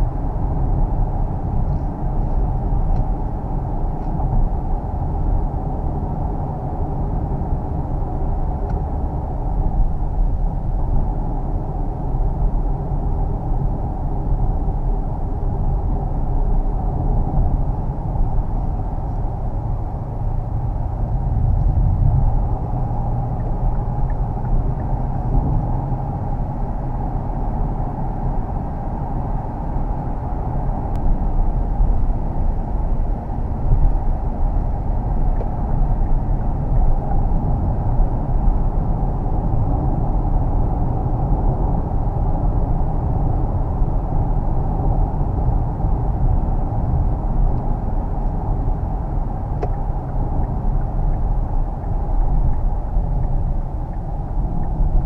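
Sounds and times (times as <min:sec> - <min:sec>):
road and wind noise in car: 0:00.0 - 0:55.0.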